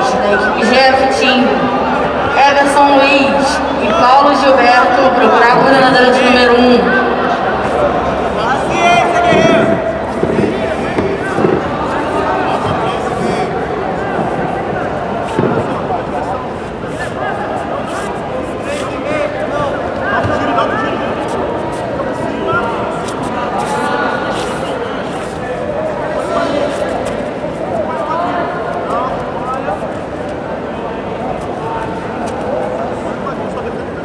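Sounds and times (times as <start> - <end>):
overlapping voices calling out: 0.0 - 34.0
people talking indistinctly: 0.0 - 34.0.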